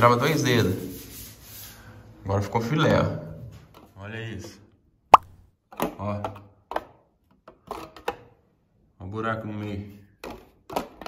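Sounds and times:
sharp pop: 0:05.2 - 0:05.4.

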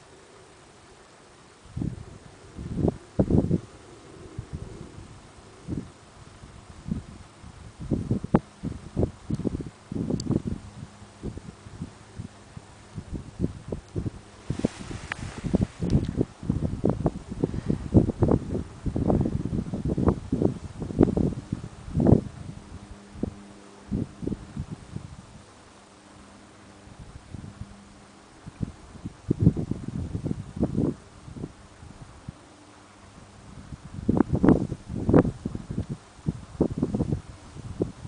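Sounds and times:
breeze buffeting microphone: 0:00.0 - 0:38.0
grass rustling: 0:00.0 - 0:38.0
rush of hiss: 0:14.4 - 0:16.4.

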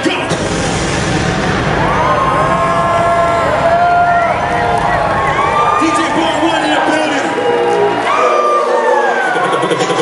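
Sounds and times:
bass beat: 0:00.2 - 0:07.7.

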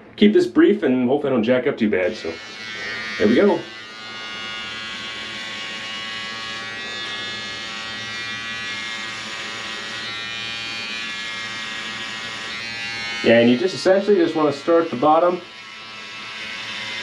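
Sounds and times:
electric hair clippers buzzing: 0:02.0 - 0:17.0.

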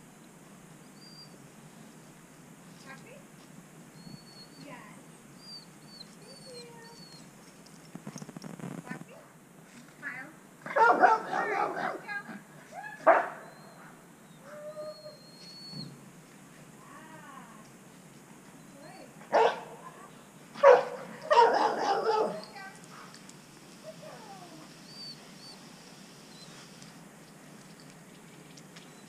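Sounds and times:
dog barking: 0:10.7 - 0:12.1, 0:13.0 - 0:13.4, 0:19.3 - 0:19.8, 0:20.6 - 0:22.5.

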